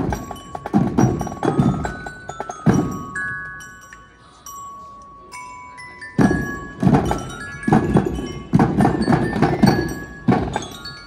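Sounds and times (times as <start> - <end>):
marching drums striking: 0.0 - 3.2, 6.2 - 10.8.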